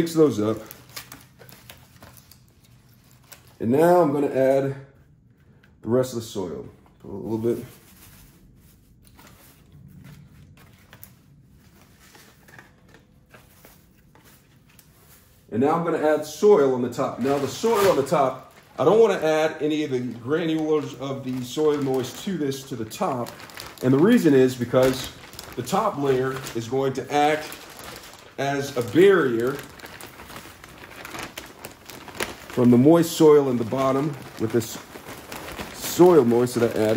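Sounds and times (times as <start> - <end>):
plastic bag crinkling: 0.0 - 4.1, 6.8 - 36.9.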